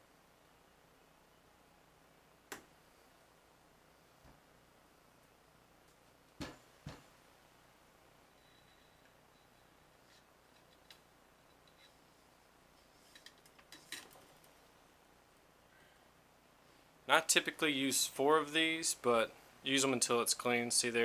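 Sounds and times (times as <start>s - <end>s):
small clicks and scrapes: 9.9s - 12.2s, 12.8s - 14.6s.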